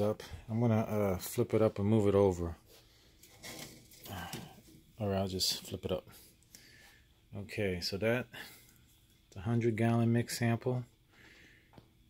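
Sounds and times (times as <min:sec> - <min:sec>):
block scraping on stove grate: 0:03.2 - 0:04.4.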